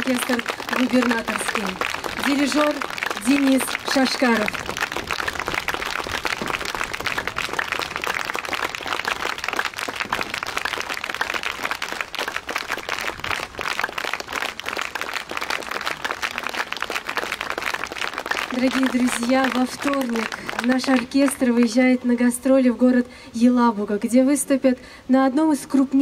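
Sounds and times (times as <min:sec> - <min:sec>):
audience applauding: 0:00.0 - 0:22.0.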